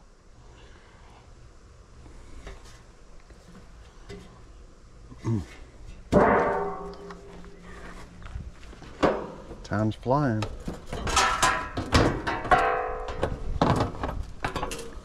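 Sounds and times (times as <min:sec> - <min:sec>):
metal panel banging down: 0:06.1 - 0:07.3, 0:10.5 - 0:15.0.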